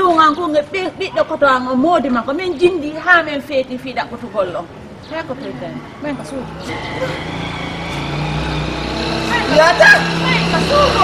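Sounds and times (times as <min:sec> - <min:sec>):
vehicle engine running: 0:06.2 - 0:11.0.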